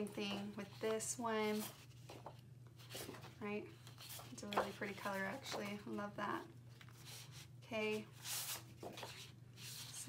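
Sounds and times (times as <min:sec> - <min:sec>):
low steady hum: 0:00.0 - 0:10.0
paper rustling and sliding: 0:00.7 - 0:05.6, 0:06.7 - 0:07.5, 0:08.1 - 0:10.0.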